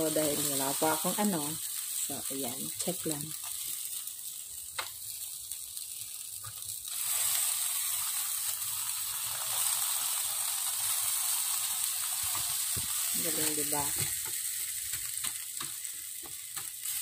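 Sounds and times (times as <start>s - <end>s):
meat sizzling on electric grill: 0.0s - 17.0s.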